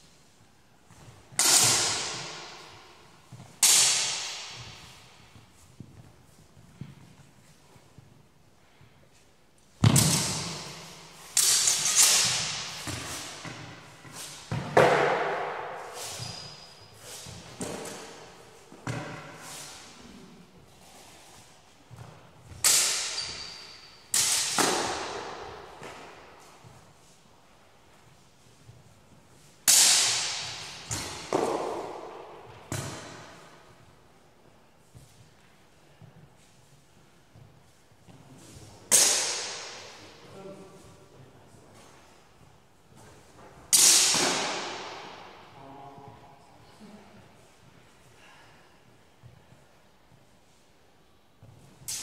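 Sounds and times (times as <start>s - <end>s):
steel swords clashing: 1.4s - 2.6s, 3.6s - 4.7s, 10.0s - 13.5s, 22.6s - 25.4s, 29.7s - 32.0s, 38.9s - 40.0s, 43.7s - 45.3s.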